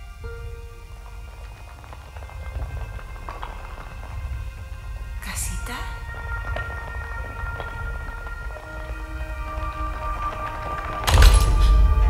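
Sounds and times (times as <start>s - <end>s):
held orchestral score notes: 0.0s - 12.0s
low rumble: 0.0s - 12.0s.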